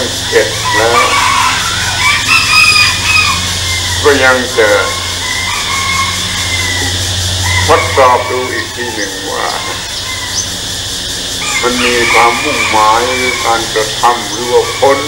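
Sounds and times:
man talking: 0.0 - 1.3, 4.0 - 5.0, 7.7 - 9.8, 11.6 - 15.0
rooster crowing: 0.0 - 15.0
steady low hum: 0.0 - 15.0.

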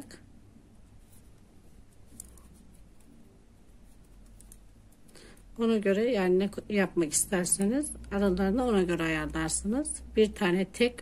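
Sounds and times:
knitting needles clicking: 2.1 - 3.1, 4.2 - 5.2.

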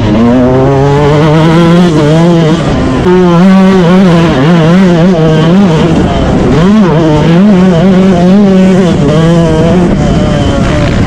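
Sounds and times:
dirt bike engine revving: 0.0 - 11.0.

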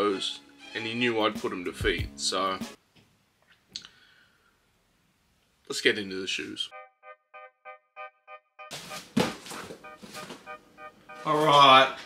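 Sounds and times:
music of short repeating notes: 6.7 - 11.8
cardboard box thunk: 9.0 - 10.4.

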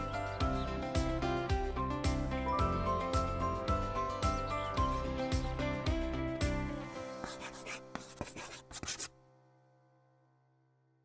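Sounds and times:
marker scratching on whiteboard: 7.2 - 9.1.

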